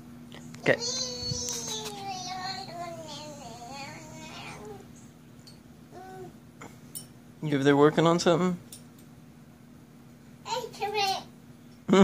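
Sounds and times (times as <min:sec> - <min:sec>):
faint steady hum: 0:00.0 - 0:12.0
toddler sing-song voice: 0:00.7 - 0:04.9.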